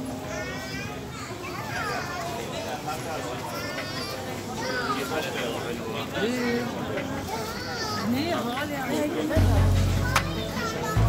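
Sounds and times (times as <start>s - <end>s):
children's voices chattering: 0.0s - 11.0s.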